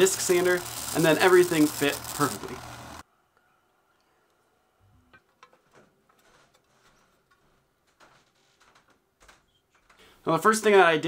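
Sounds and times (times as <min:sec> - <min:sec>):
small parts clicking: 0:00.0 - 0:03.0.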